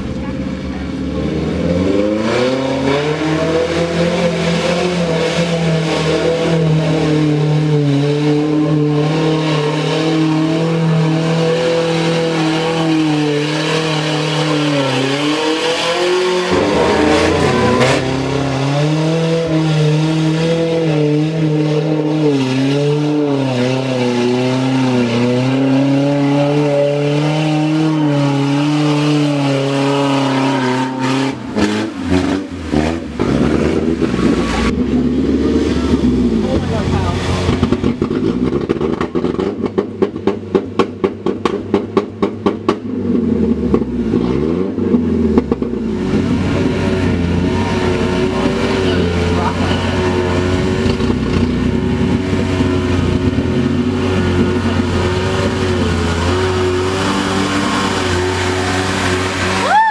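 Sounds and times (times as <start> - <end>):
buggy engine at high revs: 0.0 - 59.9.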